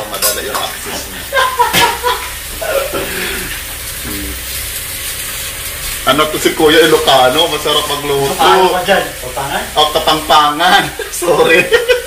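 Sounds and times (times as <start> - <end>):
pork skin sizzling in a wok: 0.0 - 12.0.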